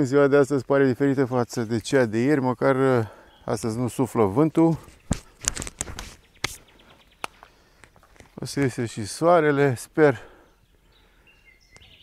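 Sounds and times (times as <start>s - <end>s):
faint high bird calls: 3.1s - 4.2s, 10.4s - 12.0s.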